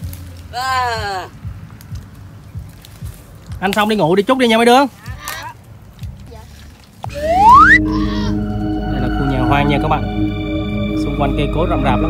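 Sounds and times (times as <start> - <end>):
background music of held notes: 0.0 - 12.0
upward sliding pitch effect: 7.1 - 12.0.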